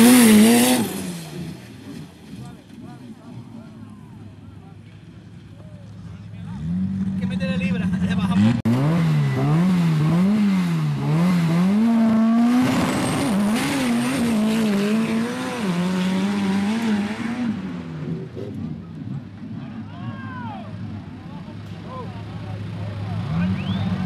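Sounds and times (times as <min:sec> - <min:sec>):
drag car engine revving: 0:00.0 - 0:03.5, 0:06.1 - 0:19.9
tires digging into sand: 0:00.0 - 0:03.8, 0:04.8 - 0:24.0.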